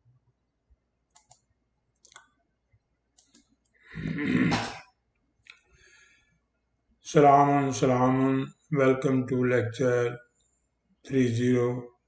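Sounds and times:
computer mouse clicking: 0:01.1 - 0:02.3, 0:03.1 - 0:03.8
loud noisy sound: 0:04.0 - 0:04.8.

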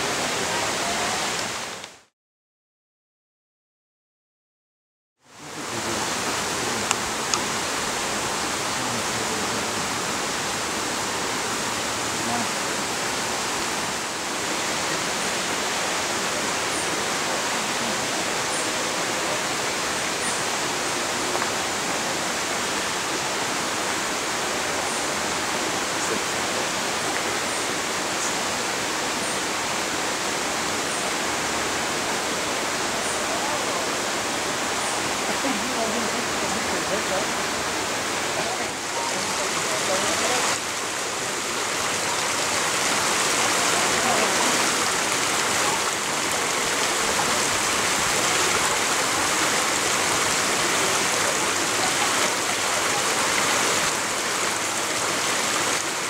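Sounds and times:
running water rushing: 0:00.0 - 0:02.1, 0:05.2 - 0:56.0.

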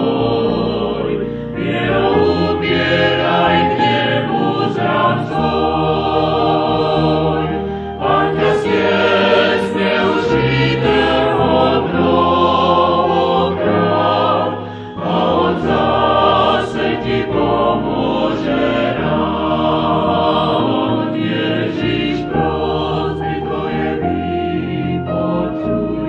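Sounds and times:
vocal group singing in harmony: 0:00.0 - 0:26.0.

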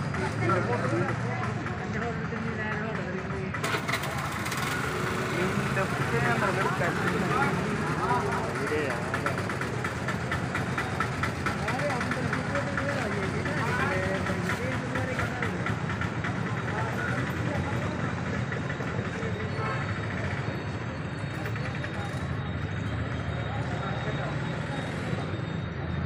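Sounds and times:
people talking indistinctly: 0:00.0 - 0:26.0
street traffic hum: 0:00.0 - 0:26.0.

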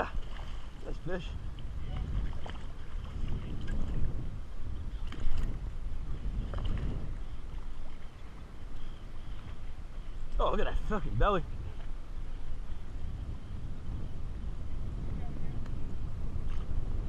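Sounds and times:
water sloshing against kayak: 0:00.0 - 0:17.0
wind rumbling on microphone: 0:00.0 - 0:17.0.

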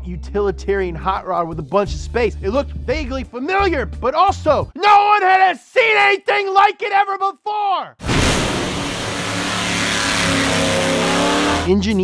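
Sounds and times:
racing car engine accelerating: 0:08.1 - 0:11.7.

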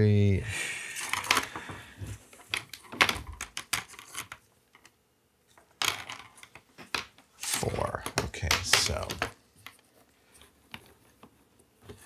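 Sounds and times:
plastic tubes clicking and knocking: 0:01.0 - 0:12.0.

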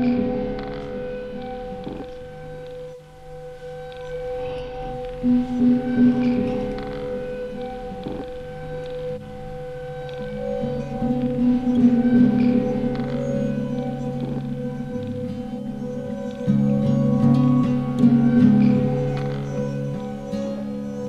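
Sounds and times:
slow ambient music: 0:00.0 - 0:21.0.

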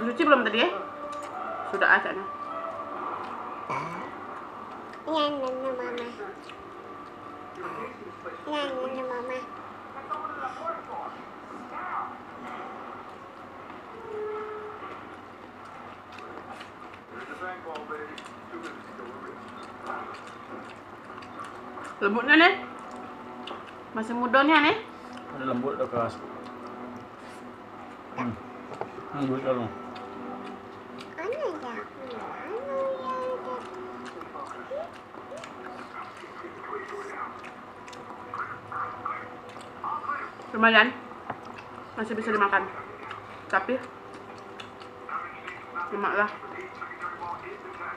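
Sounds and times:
steady background hum: 0:00.0 - 0:47.9
chewing and mouth clicks: 0:01.0 - 0:01.4, 0:14.8 - 0:22.0, 0:22.6 - 0:23.9, 0:25.0 - 0:25.3, 0:29.8 - 0:40.5, 0:41.3 - 0:47.9.

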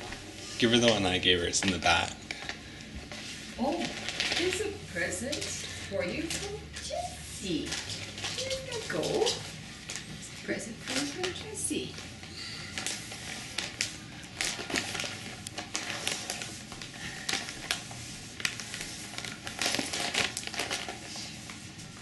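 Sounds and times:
gift wrapping crackling and rustling: 0:00.0 - 0:22.0.

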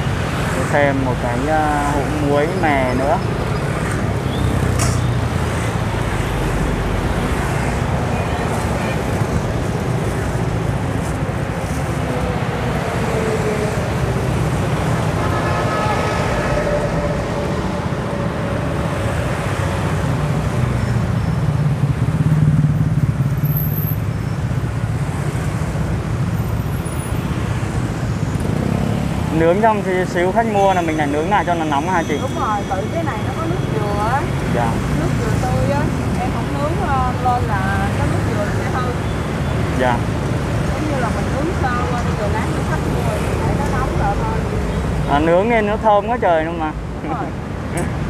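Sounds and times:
vehicle passing loudly: 0:00.0 - 0:23.6
city street traffic: 0:00.0 - 0:48.0.

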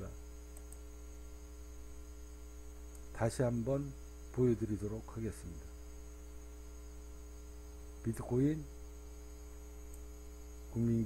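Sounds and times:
electrical mains hum: 0:00.0 - 0:11.0
faint hiss: 0:00.0 - 0:11.0.

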